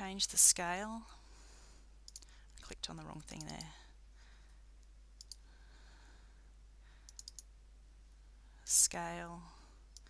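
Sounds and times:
low steady hum: 0.0 - 10.0
computer mouse clicks: 2.0 - 2.3, 3.3 - 3.7, 4.8 - 5.4, 7.1 - 7.5.

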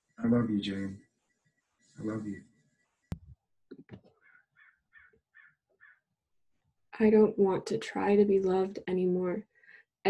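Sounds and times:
faint bird calls: 4.2 - 6.0.

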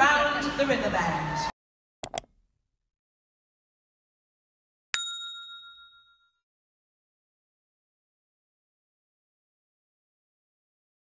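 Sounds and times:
bell ding: 5.0 - 6.4.

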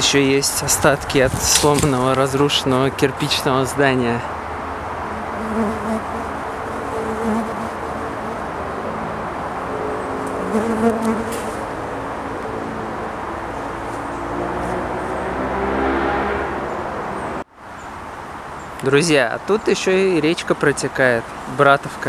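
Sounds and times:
outdoor background hiss: 0.0 - 16.0, 16.7 - 22.0
flying insect buzzing: 5.1 - 9.1, 10.2 - 12.3.

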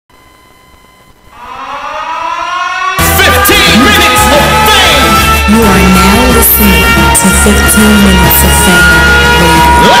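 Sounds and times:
rising siren-like tone: 1.2 - 10.0
loud music with heavy bass beat: 2.9 - 10.0.

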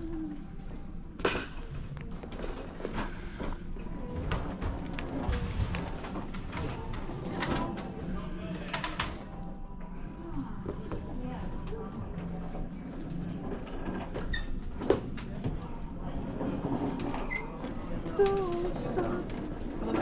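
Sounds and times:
indistinct voices: 16.1 - 20.0.

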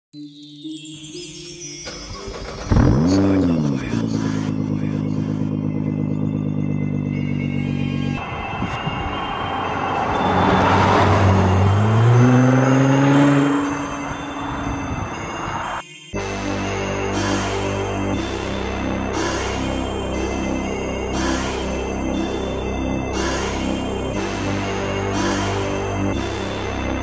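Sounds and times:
music: 0.1 - 27.0
car engine starting and idling: 1.8 - 15.8, 17.2 - 27.0
car driving past: 7.4 - 15.8.

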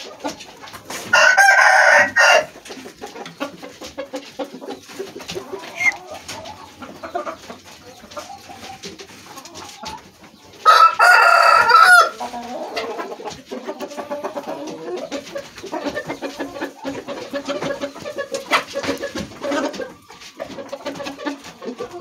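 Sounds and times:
rooster crowing: 1.1 - 2.5, 10.7 - 12.2.

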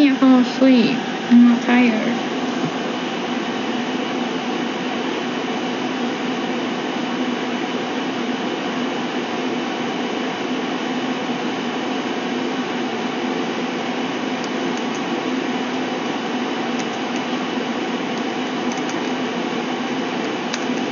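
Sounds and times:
mechanical whir with low hum: 0.0 - 20.9.

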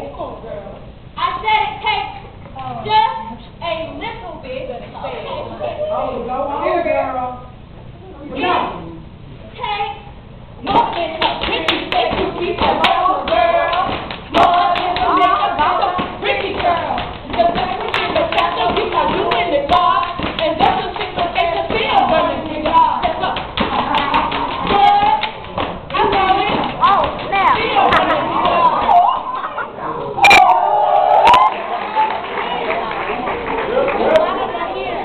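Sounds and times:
hands clapping: 10.7 - 21.2.

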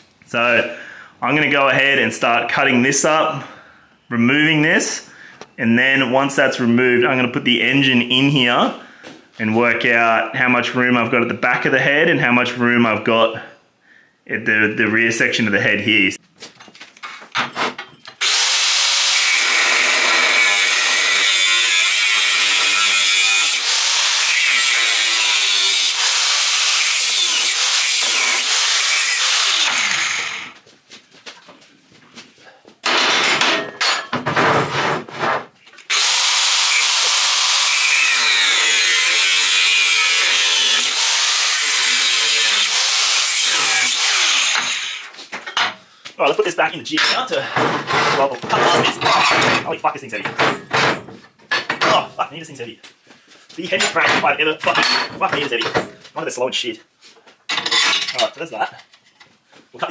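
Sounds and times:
angle grinder cutting steel: 18.2 - 30.6, 35.9 - 45.2.

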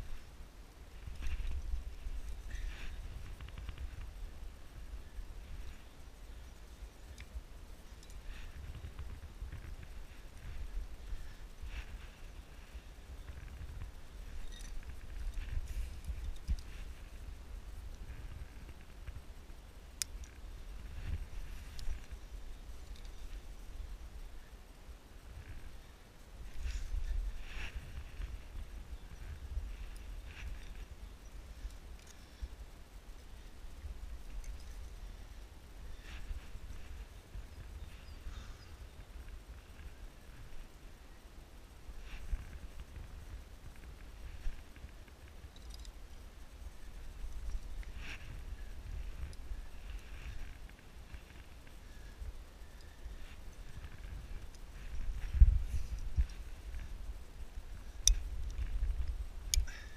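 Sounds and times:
wind rumbling on microphone: 0.0 - 59.9
climbing gear scuffs and clicks: 0.9 - 4.2, 5.2 - 19.2.

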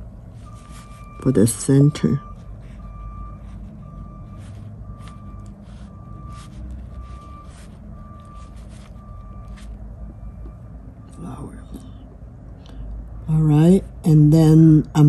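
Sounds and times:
low engine rumble: 0.0 - 15.0
backup alarm beeping: 0.4 - 11.5.

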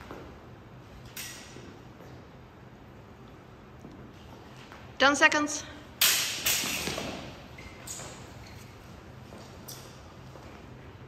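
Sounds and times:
steel swords clashing: 6.0 - 7.0.

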